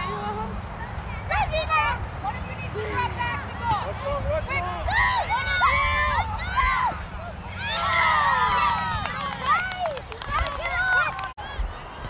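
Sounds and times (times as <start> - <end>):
spectators shouting and cheering: 3.0 - 12.0.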